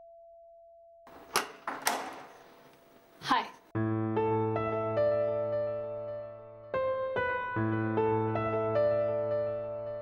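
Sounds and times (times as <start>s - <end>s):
door latch clicking: 1.1s - 2.5s.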